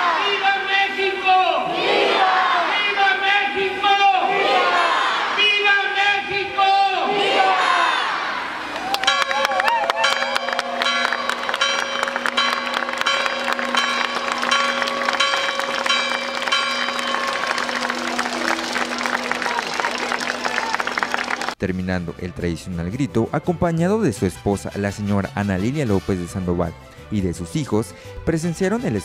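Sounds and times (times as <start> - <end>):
crowd cheering: 0.0 - 0.7, 1.6 - 21.6
crowd shouting: 0.0 - 11.0, 17.3 - 21.6
bell ringing rapidly: 9.1 - 21.3.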